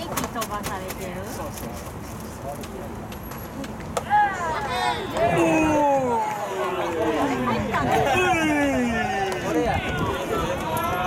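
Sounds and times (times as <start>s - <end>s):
voices calling out long shouts: 4.0s - 11.0s.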